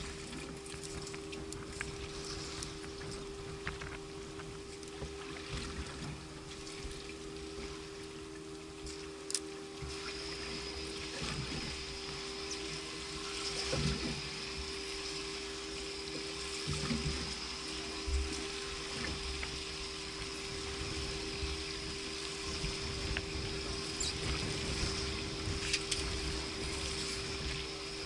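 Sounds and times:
constant low hum: 0.0 - 28.0
water slapping against boat hull: 0.0 - 28.0.

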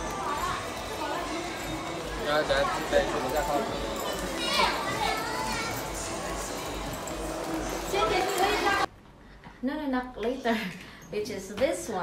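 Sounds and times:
busy shop background noise: 0.0 - 12.0.

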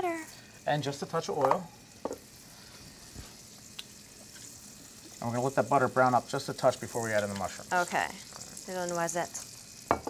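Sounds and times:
butter and oil sizzling in skillet: 0.0 - 10.0.

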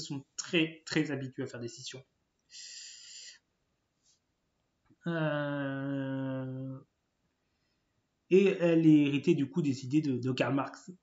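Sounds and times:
man's sharp in-breath: 2.5 - 3.4.

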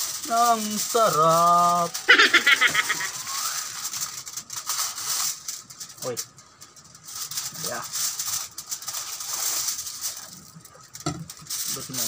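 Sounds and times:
aluminium foil crinkling: 0.0 - 12.0.

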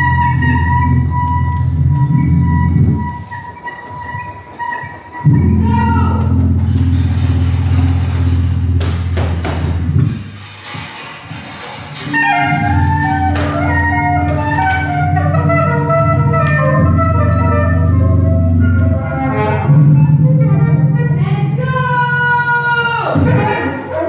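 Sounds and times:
low guitar and electronic drone: 5.2 - 10.2, 12.0 - 21.5.

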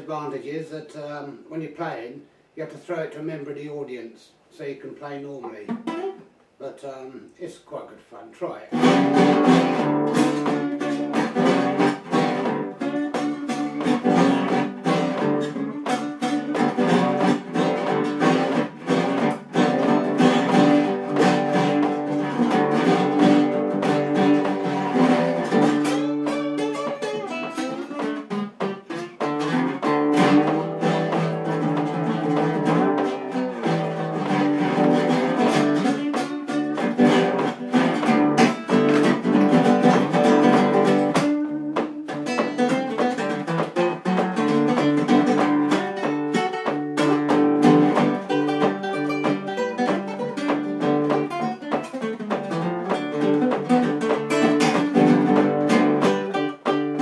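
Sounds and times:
blues acoustic guitar with slide: 5.5 - 6.4, 8.7 - 57.0.

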